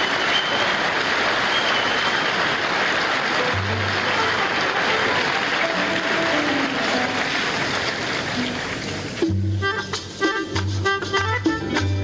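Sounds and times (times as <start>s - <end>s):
dense steady noise: 0.0s - 10.2s
orchestral music: 3.4s - 7.7s.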